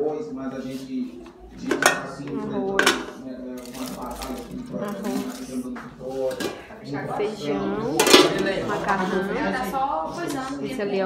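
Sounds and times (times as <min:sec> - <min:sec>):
people talking: 0:00.0 - 0:11.0
metal pot lids clinking: 0:01.6 - 0:03.1, 0:07.9 - 0:08.5.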